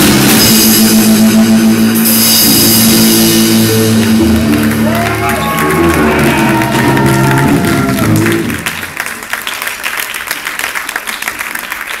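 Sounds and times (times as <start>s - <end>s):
guitar and bass final chord: 0.3s - 8.7s
audience applause: 3.9s - 12.0s.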